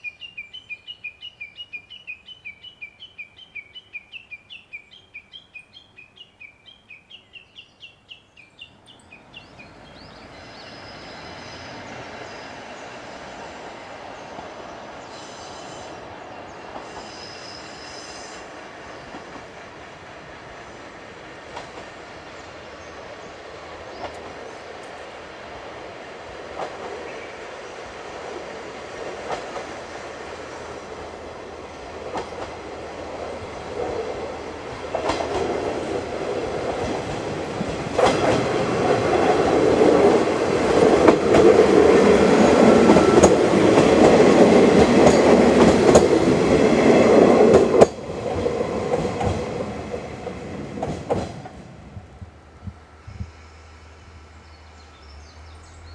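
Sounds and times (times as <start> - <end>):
diesel train passing: 0.0 - 55.9.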